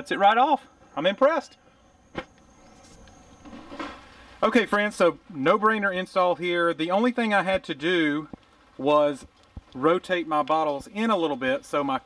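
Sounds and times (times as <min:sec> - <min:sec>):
faint high-pitched whine: 0:00.0 - 0:12.0
low background hiss: 0:00.0 - 0:12.0.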